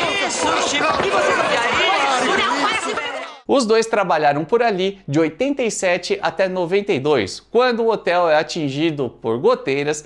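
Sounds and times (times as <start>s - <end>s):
people talking at once: 0.0s - 3.5s.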